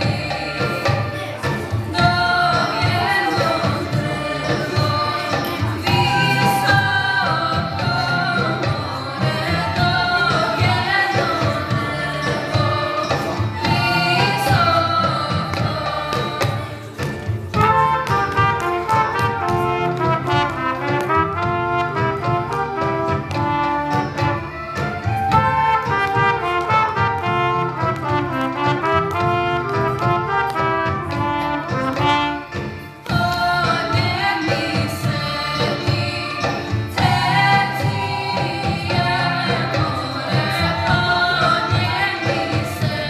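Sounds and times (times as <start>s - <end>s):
recorders and trumpets playing melody: 0.1s - 16.8s, 17.4s - 43.0s.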